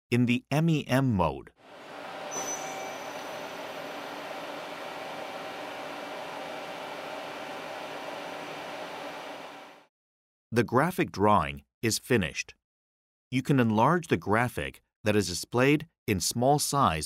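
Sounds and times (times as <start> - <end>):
faint mechanical hum: 1.6 - 9.8.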